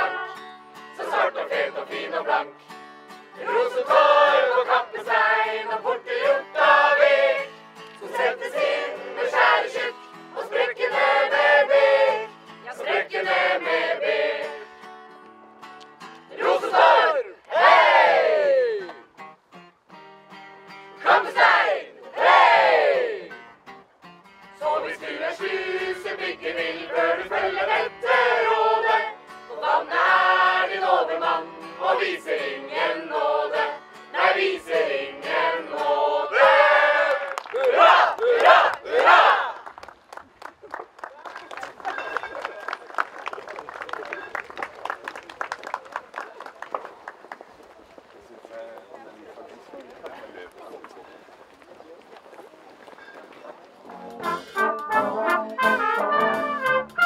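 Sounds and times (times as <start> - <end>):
group singing: 0.0 - 2.6, 3.4 - 14.7, 16.3 - 18.4, 21.0 - 23.3, 24.6 - 39.5
group shouting: 16.4 - 18.9
acoustic guitar strumming: 19.1 - 21.0, 23.3 - 24.6, 53.9 - 57.0.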